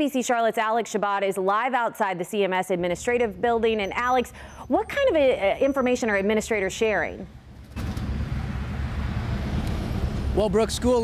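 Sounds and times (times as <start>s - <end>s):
low traffic rumble: 3.3s - 11.0s.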